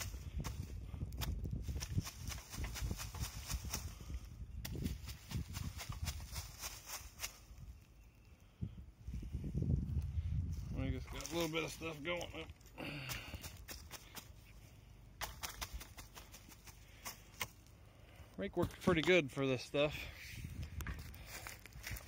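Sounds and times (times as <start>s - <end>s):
footsteps crunching through dry leaves: 1.6s - 7.8s, 10.5s - 17.7s, 21.0s - 22.0s.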